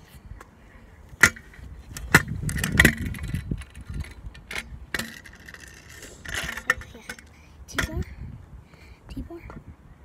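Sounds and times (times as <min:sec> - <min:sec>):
scooter clacking on ground: 0:01.2 - 0:08.0
small wheels rolling on tarmac: 0:01.4 - 0:07.9.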